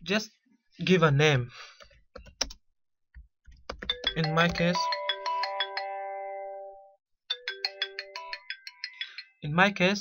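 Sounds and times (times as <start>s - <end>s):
phone ringtone chiming melody: 3.9s - 9.4s.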